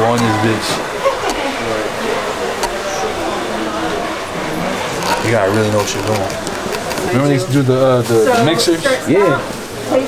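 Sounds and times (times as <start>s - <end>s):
indistinct voices talking quietly: 0.0s - 10.0s.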